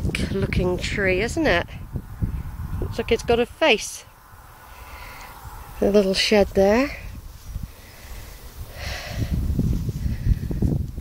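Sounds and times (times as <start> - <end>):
short breath: 4.6 - 5.5, 7.6 - 10.5.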